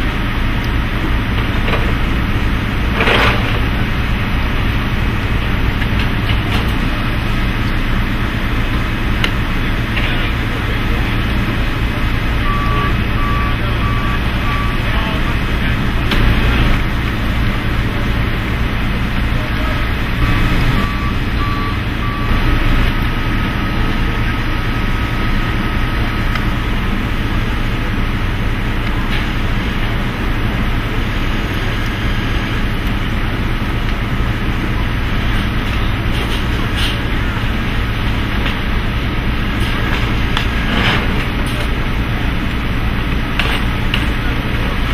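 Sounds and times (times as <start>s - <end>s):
forklift engines: 0.0s - 44.9s
reversing alarm beeps: 12.1s - 16.8s, 20.2s - 25.2s.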